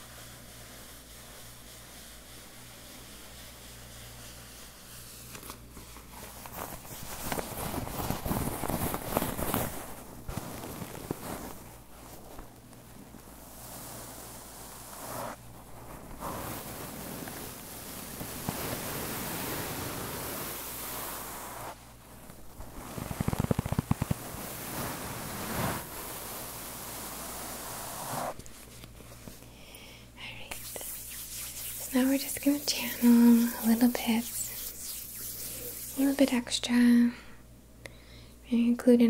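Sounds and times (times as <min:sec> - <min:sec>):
fabric pouch rustling: 0:05.3 - 0:18.8, 0:21.0 - 0:29.4, 0:30.5 - 0:36.2.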